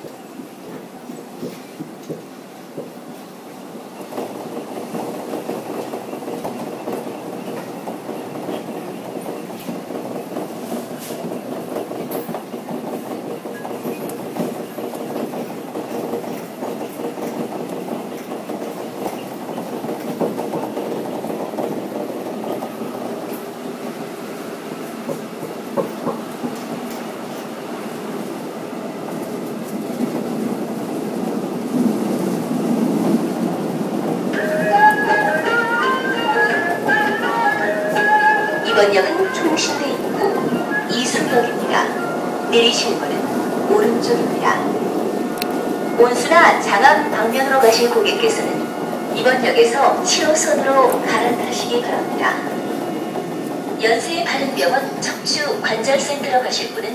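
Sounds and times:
train wheels rumbling on rails: 0.0 - 56.9.

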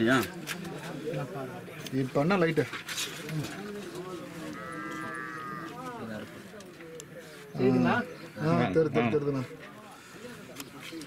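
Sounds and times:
low indistinct voices: 0.0 - 11.0
animal bleating: 4.5 - 5.8.

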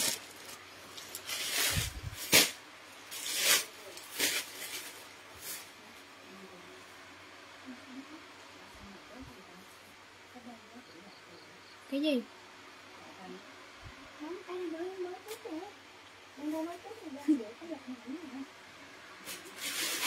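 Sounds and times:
silk fabric swishing: 1.2 - 5.7.

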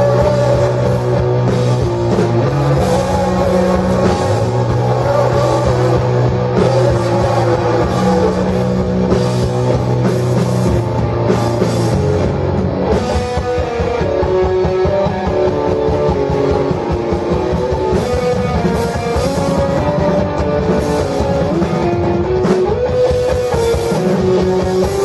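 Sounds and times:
drum kit beat: 0.0 - 25.0
electric guitar riffs: 0.0 - 25.0.

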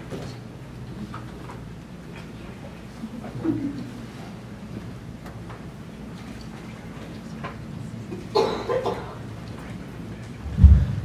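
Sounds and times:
low thump on microphone: 10.5 - 11.0.

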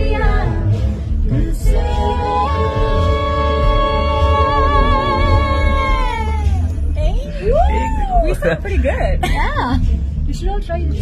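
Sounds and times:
voices singing unaccompanied: 0.0 - 8.7.

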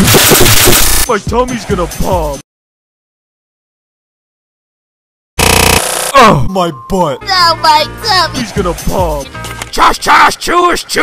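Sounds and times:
balloon bursting: 0.0 - 1.0.

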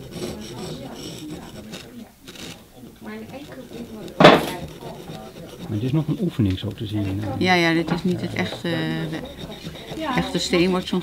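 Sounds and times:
carving tool scraping stone: 0.0 - 11.0.

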